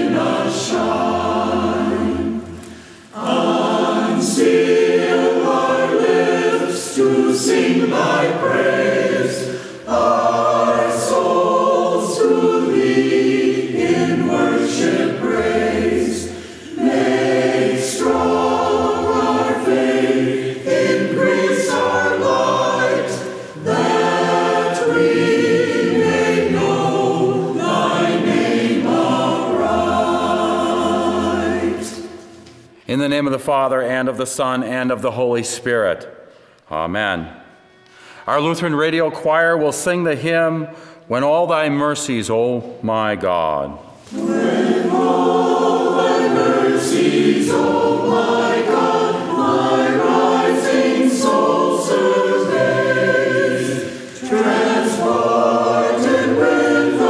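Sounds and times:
choir singing: 0.0 - 32.6, 43.9 - 57.0.

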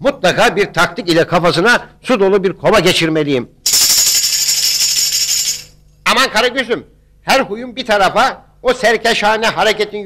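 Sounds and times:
tambourine jingle roll: 3.6 - 6.0.

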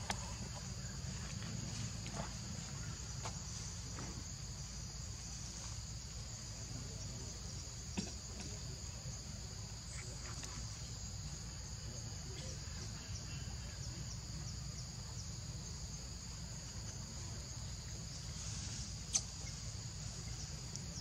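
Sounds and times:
insects buzzing: 0.0 - 21.0
faint ticks: 20.7 - 20.9.

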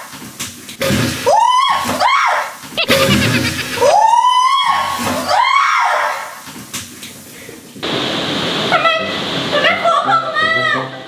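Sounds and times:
girl screaming: 1.3 - 2.5, 3.8 - 6.3
backing music: 2.8 - 4.1.

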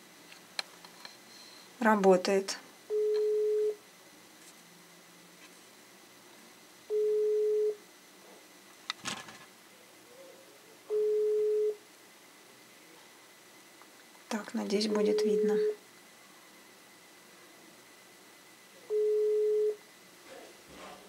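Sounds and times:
phone ringback beeps: 2.9 - 3.8, 6.9 - 7.8, 10.9 - 11.8, 18.9 - 19.8.

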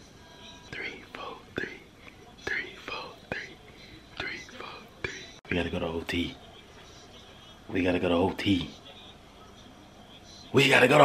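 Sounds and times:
man whispering: 0.7 - 6.4.

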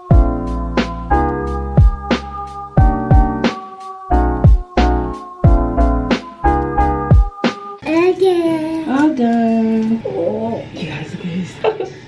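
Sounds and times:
toddler singing: 7.8 - 9.0.

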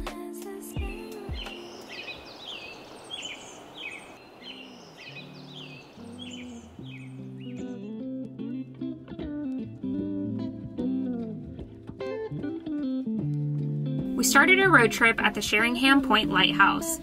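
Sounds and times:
music: 0.0 - 2.1, 5.1 - 17.0
bird calling: 1.1 - 7.9
plucked bass and guitar: 5.5 - 17.0.

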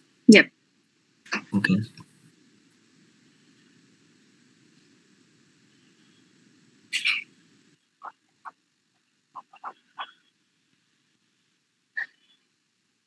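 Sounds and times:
animal calls: 6.9 - 7.3, 8.0 - 8.6, 9.3 - 10.4, 12.0 - 12.5.

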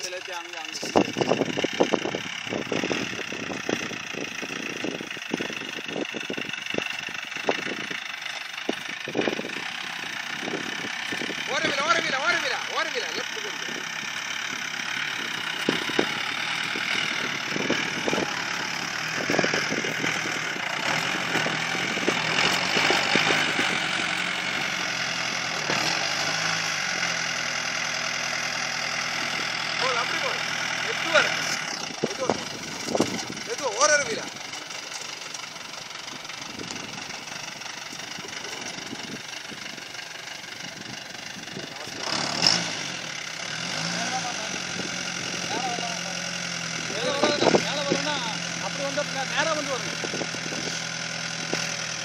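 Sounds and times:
voices talking: 0.0 - 25.9, 26.5 - 40.1, 43.0 - 51.6
off-road vehicle engine running: 0.0 - 52.0.

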